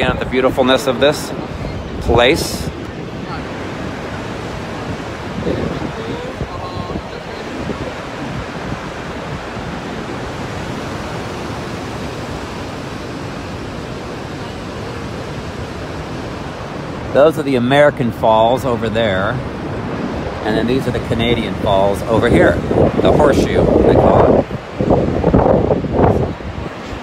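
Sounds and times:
waterfall rushing: 0.0s - 27.0s
wind buffeting microphone: 0.0s - 27.0s.

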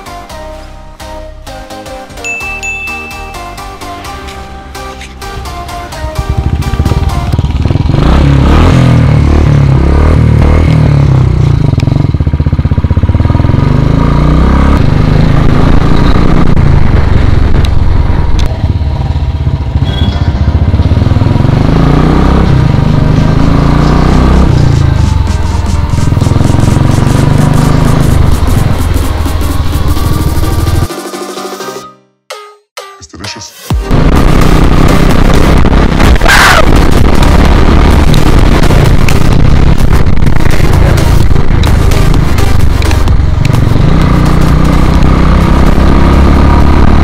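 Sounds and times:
music: 0.0s - 7.5s, 24.6s - 34.7s, 40.2s - 45.0s
motorcycle engine revving: 5.0s - 30.9s, 33.9s - 47.0s.

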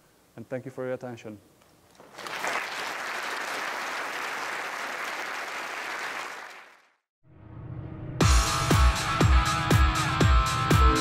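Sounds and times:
audience applauding: 2.0s - 7.0s
music: 7.3s - 11.0s.

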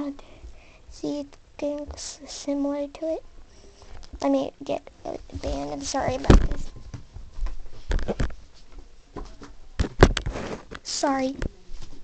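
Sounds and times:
short rustle: 10.2s - 10.9s.

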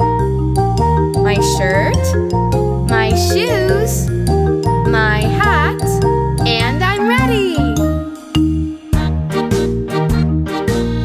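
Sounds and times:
upbeat children's song music: 0.0s - 11.0s.

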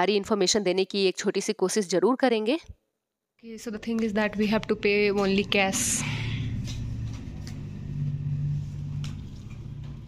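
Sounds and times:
low engine hum: 4.7s - 10.0s.

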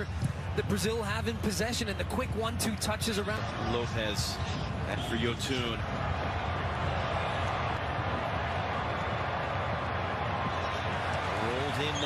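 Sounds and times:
stadium ambience: 0.0s - 12.0s.

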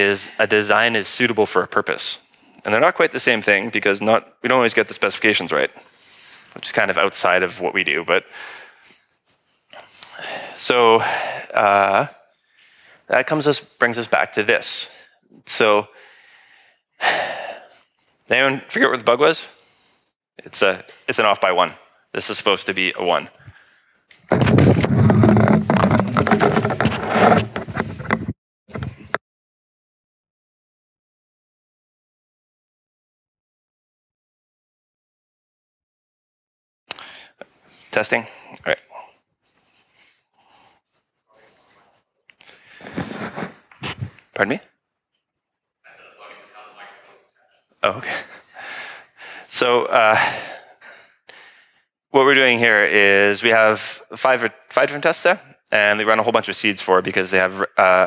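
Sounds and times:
breathy exhale: 8.3s - 9.0s, 10.0s - 11.5s, 15.9s - 17.8s, 36.9s - 37.4s
microphone handling noise: 24.2s - 29.2s, 42.8s - 44.3s
man saying uh: 45.9s - 47.2s.

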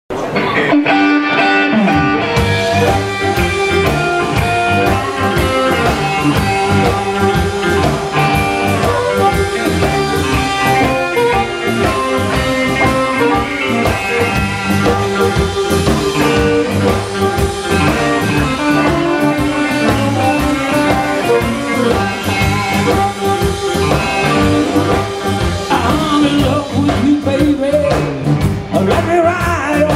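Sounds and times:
drum kit: 0.1s - 29.9s
electric guitars: 0.1s - 29.9s
harmonica: 2.4s - 26.6s.

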